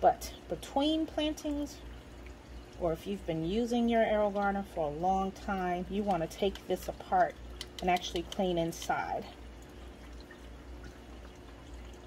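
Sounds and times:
low steady hum: 0.0 - 12.0
water dripping into a tank: 0.0 - 12.0.

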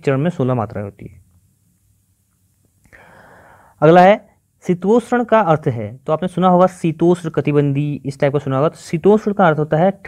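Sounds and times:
man speaking: 0.0 - 1.2, 3.8 - 10.0
faint breathy hiss: 0.8 - 4.9.

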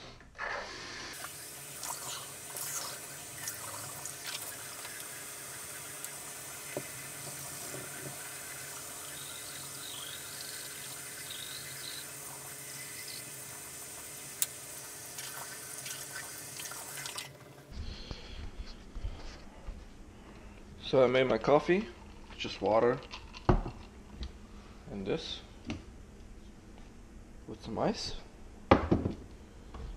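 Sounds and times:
sink tap running: 1.1 - 17.6.

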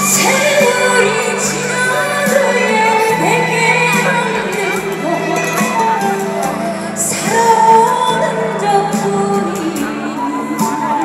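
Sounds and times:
music accompaniment: 0.0 - 11.0
woman singing into microphone: 0.0 - 11.0.

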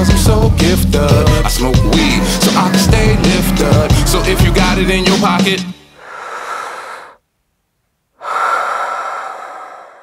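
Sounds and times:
heavy breathy exhales: 6.0 - 7.2, 8.2 - 10.0.

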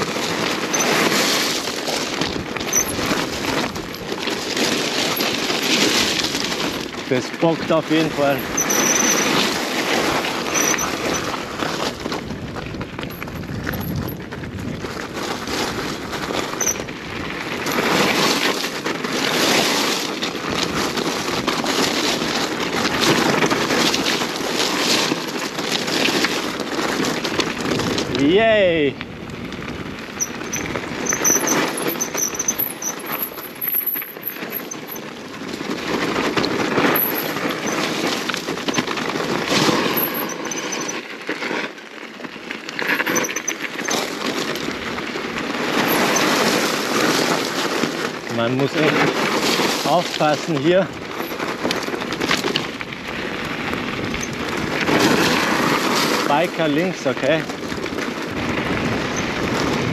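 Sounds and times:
bike knocking and rattling: 0.0 - 59.9
bike tyres crunching on gravel: 0.0 - 59.9.

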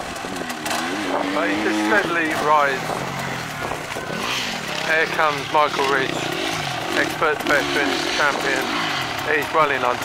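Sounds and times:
motorcycle engine idling and revving: 0.0 - 10.0.

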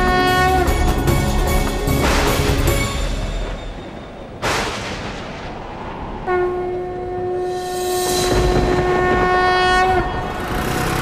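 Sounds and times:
long horn-like note: 6.2 - 10.6.

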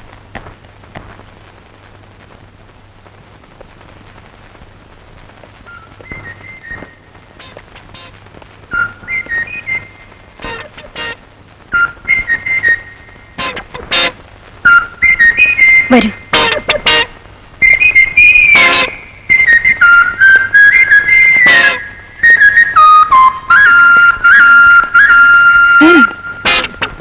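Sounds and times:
high whistled tune: 5.7 - 8.1, 8.7 - 13.8, 14.7 - 27.0.

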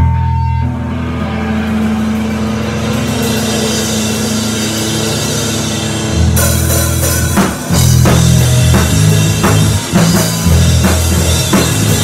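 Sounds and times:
band holding low chord: 0.0 - 12.0.

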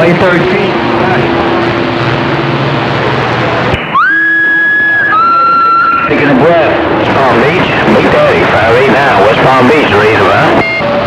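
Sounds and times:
low hum: 0.0 - 11.0
electronic tone sliding: 0.9 - 11.0
radio static hiss: 6.1 - 11.0.

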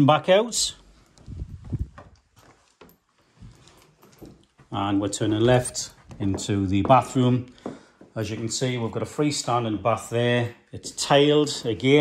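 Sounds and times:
footsteps on floor: 1.5 - 8.9.

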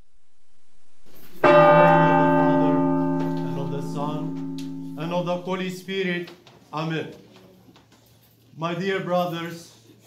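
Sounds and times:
deep bell ringing: 1.1 - 5.9.

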